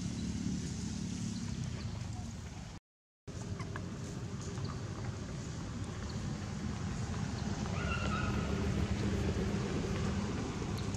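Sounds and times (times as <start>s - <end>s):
monkey high call: 7.7s - 8.6s.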